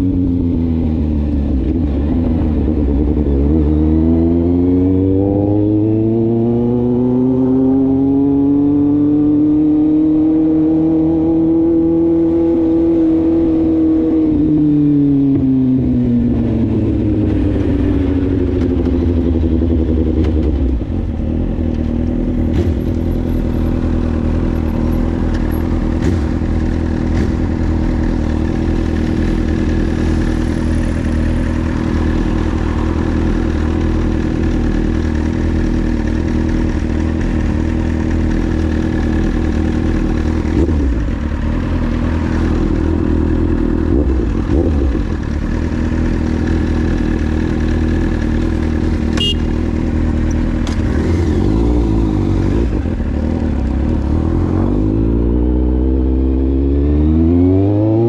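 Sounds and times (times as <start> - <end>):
motorcycle revving pulling away: 0.0 - 58.0
motorcycle engine idling: 16.5 - 50.7.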